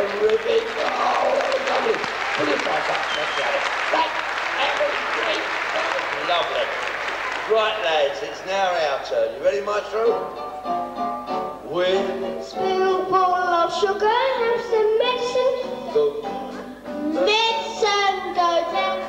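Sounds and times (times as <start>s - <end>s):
audience clapping: 0.0s - 8.8s
murmur of voices: 0.0s - 10.6s, 11.5s - 19.0s
people singing: 11.7s - 19.0s.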